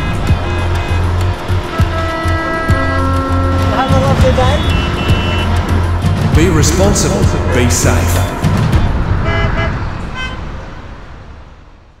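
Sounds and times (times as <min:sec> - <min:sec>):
vehicle traffic noise: 0:00.0 - 0:12.0.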